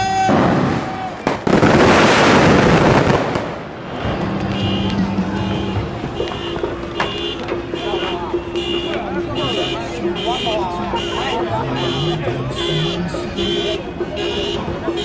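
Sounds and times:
fireworks crackling: 0:00.0 - 0:07.8
firework bang: 0:00.2 - 0:06.8
high beeping: 0:03.9 - 0:15.0.

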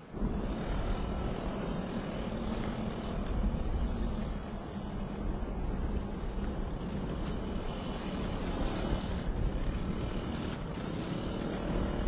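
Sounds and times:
wind-like noise: 0:00.0 - 0:12.0.

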